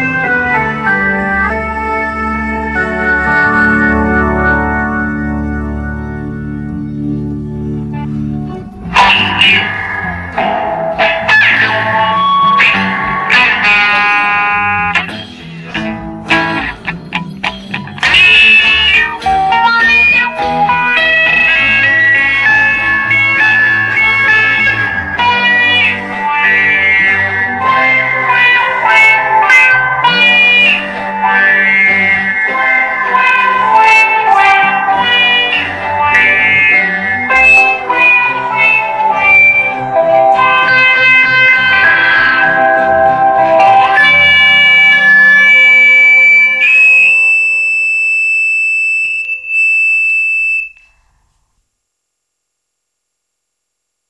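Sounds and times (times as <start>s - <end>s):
organ playing: 0.0s - 49.1s
lead electric guitar: 0.0s - 49.6s.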